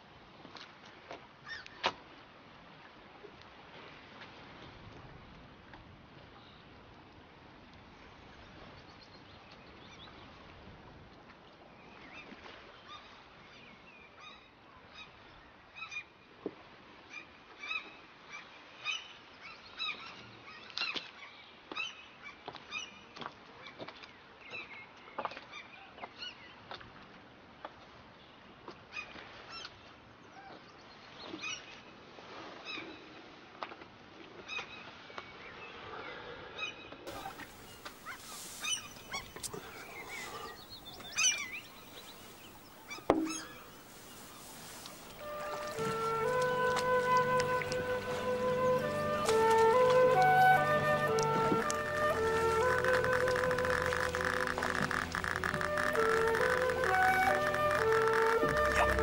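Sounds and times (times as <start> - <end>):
birds honking calls: 37.1 - 59.0.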